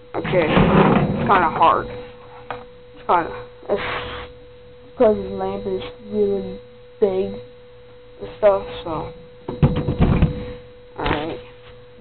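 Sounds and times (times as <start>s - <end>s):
knocks and clunks of handling: 0.2s - 1.6s, 9.5s - 11.2s.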